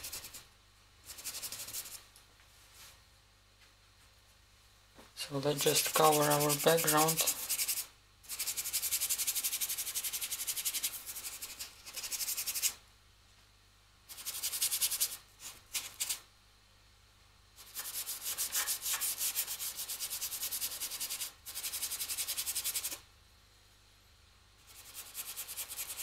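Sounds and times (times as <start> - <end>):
paintbrush scrubbing on board: 0.0 - 0.4, 1.0 - 2.0, 5.6 - 12.8, 14.1 - 16.2, 17.6 - 23.0, 24.6 - 26.0.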